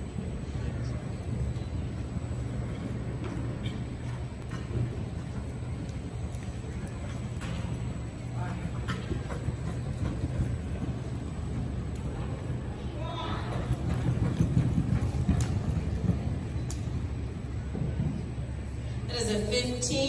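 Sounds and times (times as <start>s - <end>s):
steady low hum: 0.0s - 20.0s
horse hoofbeats on dirt: 1.4s - 18.5s.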